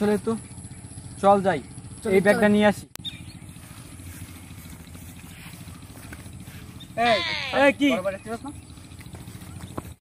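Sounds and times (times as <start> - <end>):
low outdoor background rumble: 0.0 - 10.0.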